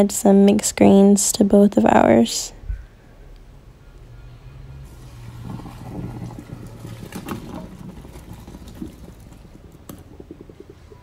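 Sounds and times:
water pouring into colander: 4.8s - 11.0s.

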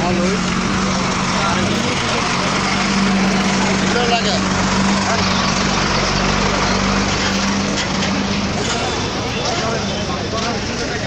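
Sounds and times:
crowd chatter on street: 0.0s - 11.0s
vehicle engine idling: 0.0s - 11.0s.

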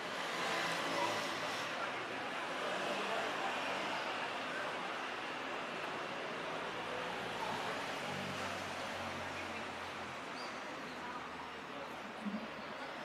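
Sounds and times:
faint distant voices: 0.0s - 13.0s
traffic noise: 0.0s - 13.0s.

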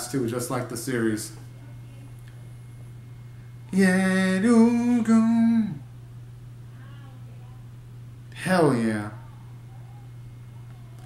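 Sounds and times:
faint low hum: 0.0s - 11.0s
man singing yeah: 3.7s - 5.8s.

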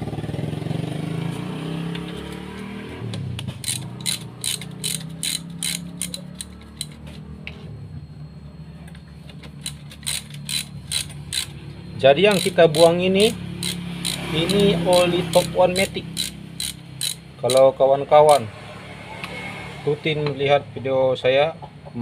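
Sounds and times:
ratchet wrench clicking: 3.6s - 7.2s, 9.5s - 18.4s.

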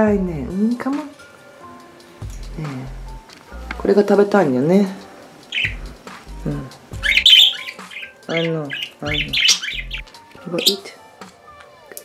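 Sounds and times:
budgerigar calling: 5.4s - 11.0s.

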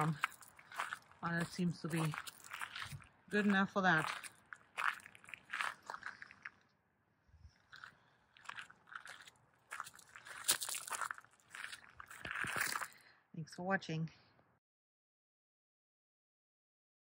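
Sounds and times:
footsteps on gravel: 0.0s - 6.6s, 7.6s - 13.0s.

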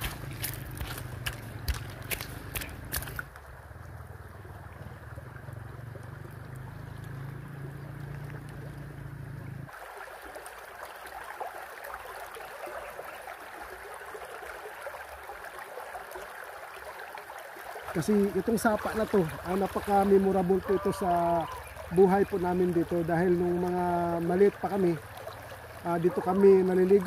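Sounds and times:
water rushing over rocks: 0.0s - 3.9s, 9.7s - 27.0s
creek water trickling over stones: 0.0s - 27.0s.

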